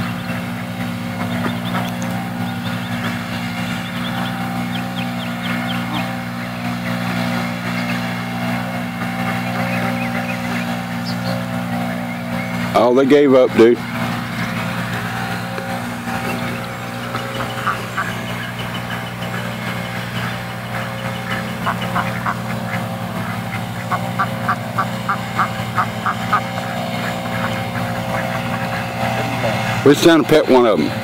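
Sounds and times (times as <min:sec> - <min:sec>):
ducks quacking: 0:00.0 - 0:31.0
golf cart motor humming: 0:00.0 - 0:31.0.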